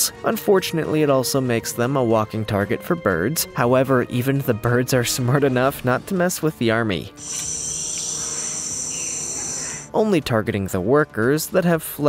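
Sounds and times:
insect trilling: 7.2s - 9.9s.

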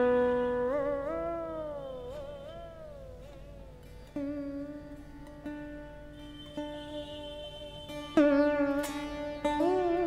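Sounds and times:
slide string instrument notes: 0.0s - 10.0s.

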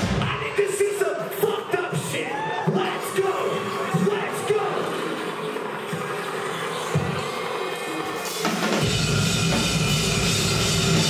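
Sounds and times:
rock drum kit: 0.0s - 0.5s, 8.2s - 11.0s
bass and distorted guitars: 8.7s - 11.0s.

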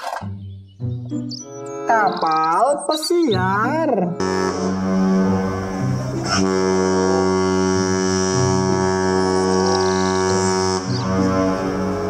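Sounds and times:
background music: 0.0s - 12.0s
ship's horn blast: 4.2s - 12.0s.

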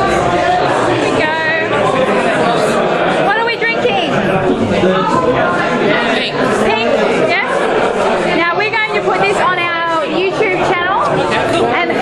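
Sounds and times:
overlapping chatter of people: 0.0s - 12.0s.

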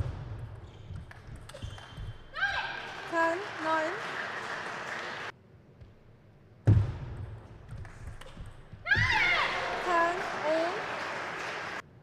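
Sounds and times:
high-pitched shout: 2.4s - 2.9s, 8.9s - 10.8s.

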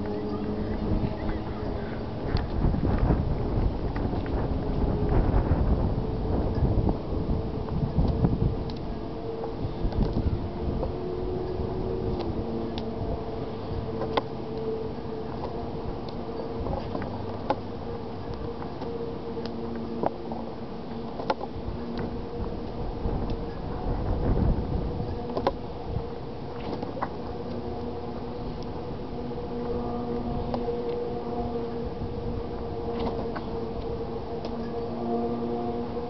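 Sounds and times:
faint steady hum: 0.0s - 36.0s
wind buffeting microphone: 0.0s - 36.0s.

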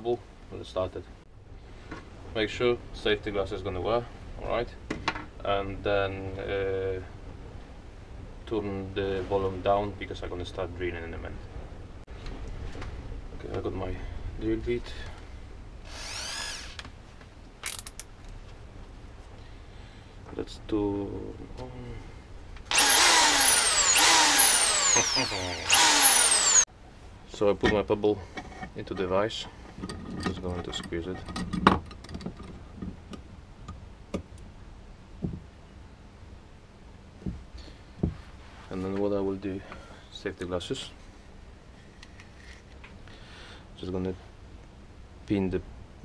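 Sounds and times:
cordless drill whirring: 15.9s - 16.9s, 22.7s - 26.7s
metal vice screw clicks and rattles: 17.6s - 18.1s
drill chuck ratcheting clicks: 22.7s - 26.6s.

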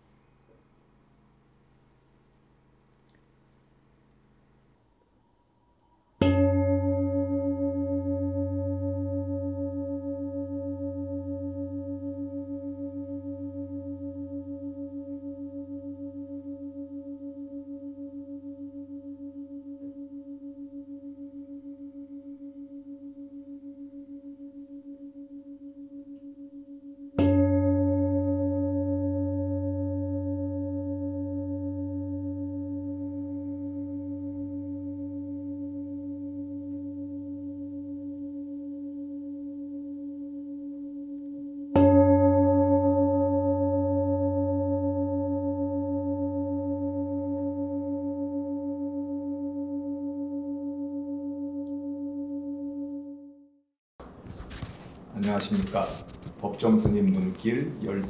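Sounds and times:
singing bowl struck with mallet: 6.2s - 53.4s.

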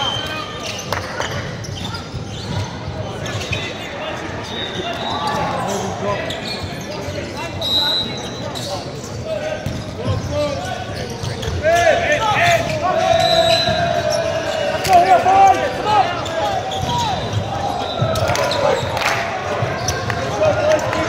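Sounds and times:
sneakers squeaking on floor: 0.0s - 20.8s
players shouting: 9.4s - 21.0s.

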